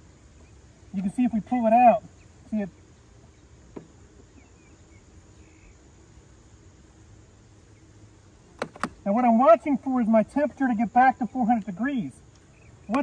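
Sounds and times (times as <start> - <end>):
bees buzzing: 0.0 - 13.0.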